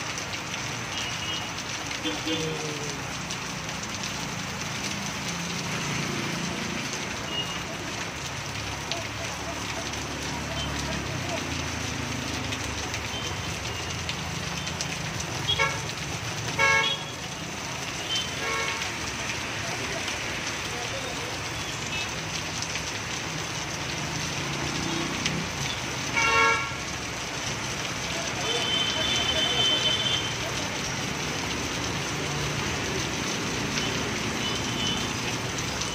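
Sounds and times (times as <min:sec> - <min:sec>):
heavy rain falling: 0:00.0 - 0:35.9
low traffic rumble: 0:00.0 - 0:35.9
vehicle horn tooting: 0:16.6 - 0:17.1, 0:26.2 - 0:26.8, 0:28.4 - 0:30.4.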